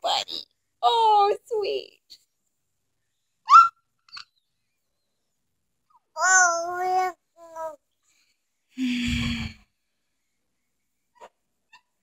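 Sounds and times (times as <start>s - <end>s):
toddler squealing: 3.5s - 3.8s
toddler babbling: 6.1s - 7.8s.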